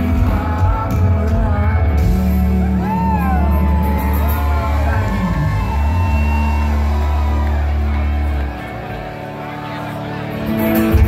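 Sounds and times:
guitar: 0:00.0 - 0:11.0.

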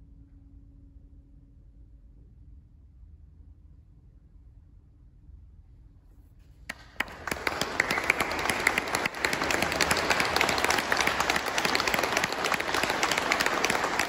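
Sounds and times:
audience applauding: 0:06.7 - 0:14.0.

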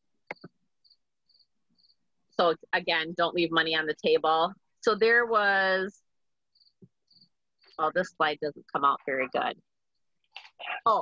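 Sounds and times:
cricket chirping: 0:00.3 - 0:02.0, 0:06.5 - 0:07.8.

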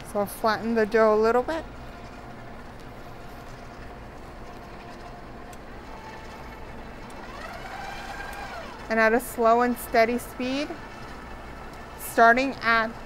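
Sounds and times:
stand mixer motor hum: 0:01.7 - 0:13.0
high motor whine: 0:05.5 - 0:08.9.

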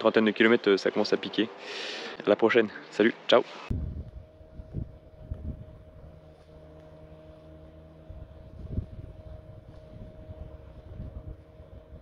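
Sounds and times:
wind buffeting microphone: 0:03.7 - 0:06.3, 0:08.0 - 0:12.0
motorboat engine humming: 0:03.7 - 0:12.0.

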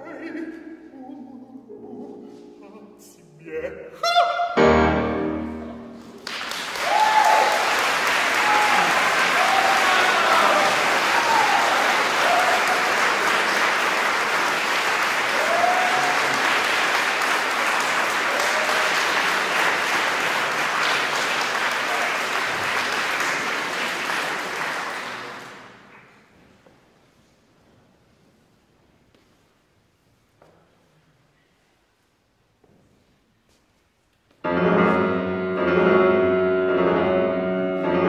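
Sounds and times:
audience applause: 0:06.0 - 0:26.2.

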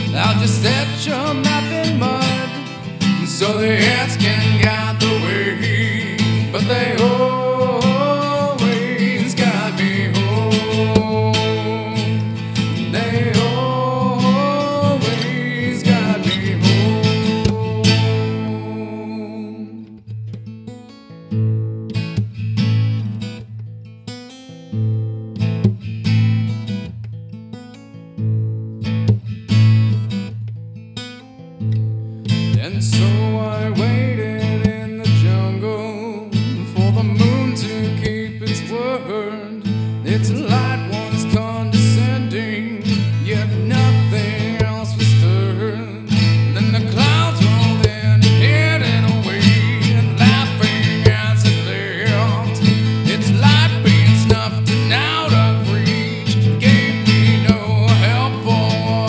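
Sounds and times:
fingerstyle acoustic guitar: 0:00.0 - 0:59.0
percussive slaps on guitar body: 0:25.6 - 0:25.9.

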